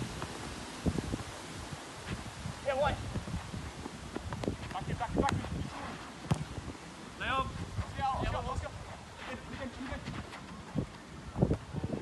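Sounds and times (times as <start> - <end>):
ball thudding: 6.2 - 6.6.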